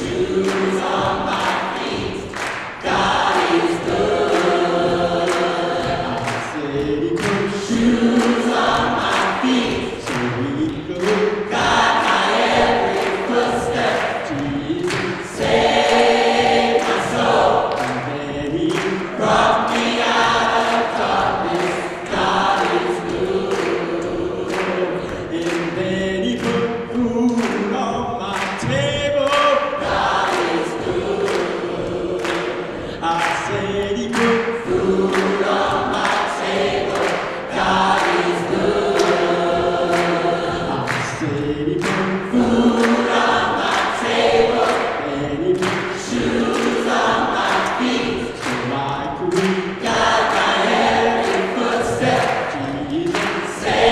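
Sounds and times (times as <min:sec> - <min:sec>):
gospel choir singing: 0:00.0 - 0:53.9
steady beat: 0:00.0 - 0:53.9.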